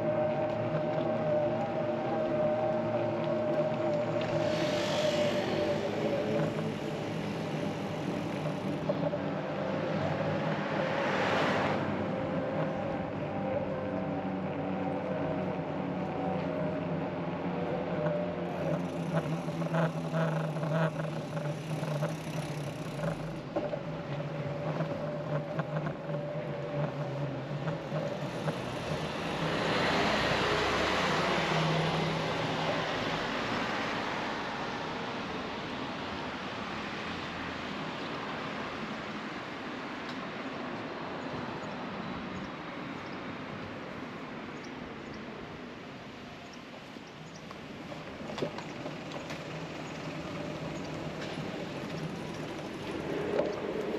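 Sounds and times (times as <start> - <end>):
e-bike hum and whine: 0.0 - 53.9
passing traffic rush: 0.0 - 53.9.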